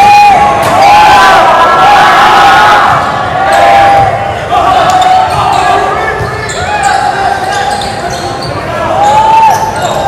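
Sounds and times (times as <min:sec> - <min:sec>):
long drawn-out voices: 0:00.0 - 0:10.0
spectators cheering and shouting: 0:00.0 - 0:10.0.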